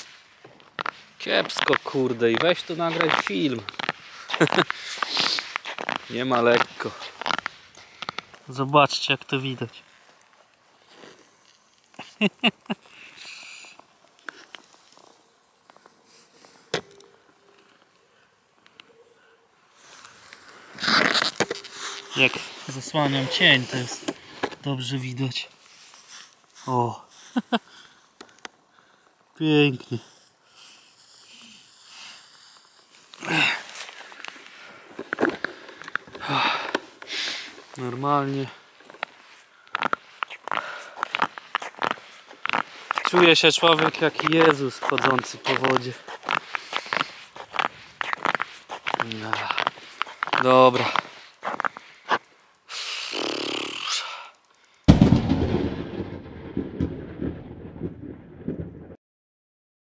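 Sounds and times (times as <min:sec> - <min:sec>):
person laughing: 0:04.3 - 0:04.7, 0:12.0 - 0:13.1, 0:27.3 - 0:27.7
person breathing softly: 0:12.8 - 0:14.6, 0:25.8 - 0:29.2, 0:38.6 - 0:42.9, 0:46.1 - 0:48.7
breathy sound: 0:33.1 - 0:37.8, 0:38.4 - 0:43.1, 0:46.1 - 0:54.9
loud boom with rumble: 0:54.9 - 0:59.0.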